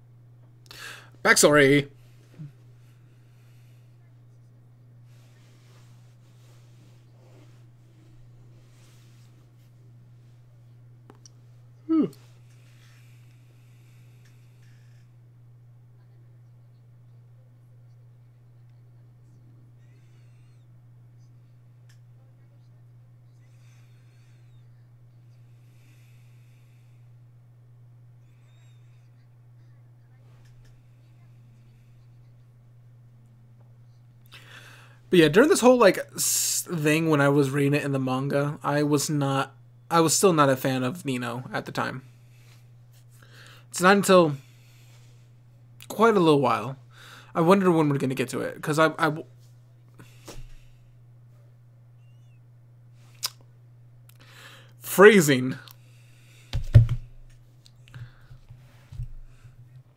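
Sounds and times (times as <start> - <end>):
faint low hum: 0.0 - 59.9.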